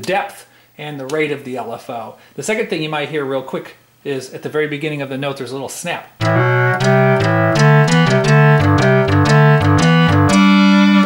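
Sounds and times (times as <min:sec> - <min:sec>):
synthesizer playing quick notes: 0:06.2 - 0:11.0.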